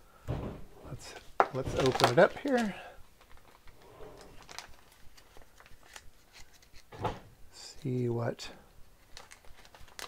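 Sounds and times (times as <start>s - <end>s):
plastic bag crinkling: 1.5s - 6.8s, 9.0s - 10.0s.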